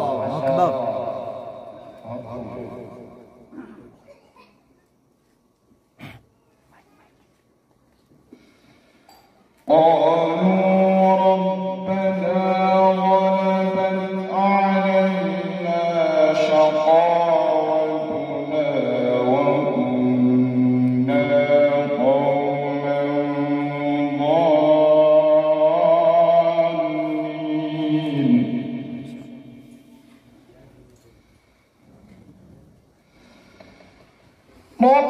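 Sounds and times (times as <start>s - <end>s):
man chanting into a microphone: 0.0s - 3.5s, 9.6s - 30.0s, 34.6s - 35.0s.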